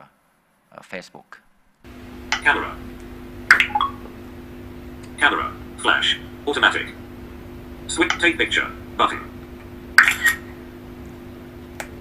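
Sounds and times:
steady low hum: 1.4 - 12.0.

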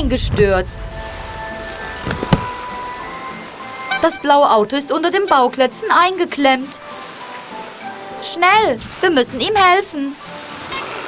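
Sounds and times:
rain hiss: 0.0 - 11.0
soft background music: 0.0 - 11.0
sharp knock: 2.0 - 2.5.

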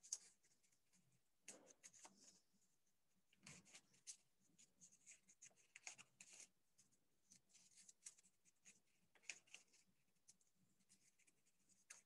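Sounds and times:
faint scratching and rustling: 0.0 - 12.0.

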